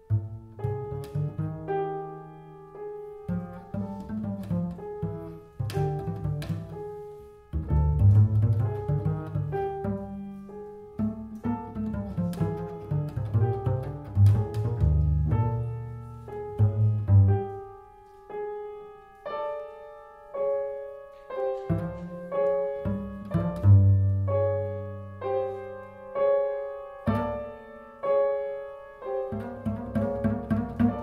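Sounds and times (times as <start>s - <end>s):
double bass notes: 0.0s - 31.0s
piano notes: 0.0s - 31.0s.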